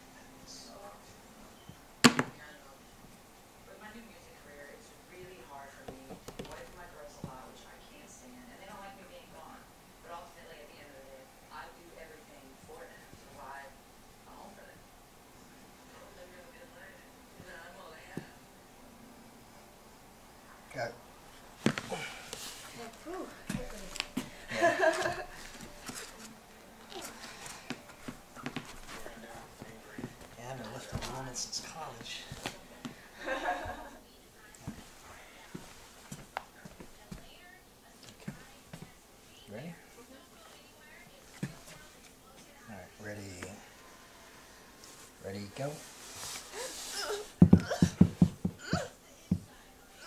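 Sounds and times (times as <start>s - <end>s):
shoe knocking against wall: 47.4s - 49.5s.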